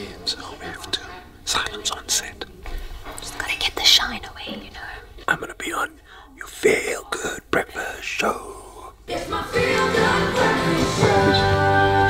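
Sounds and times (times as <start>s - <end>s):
people whispering: 0.0s - 9.0s.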